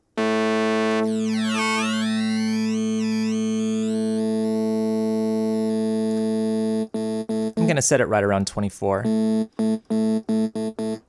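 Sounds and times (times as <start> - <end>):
buzzy synth low note: 0.0 - 7.8, 9.0 - 11.0.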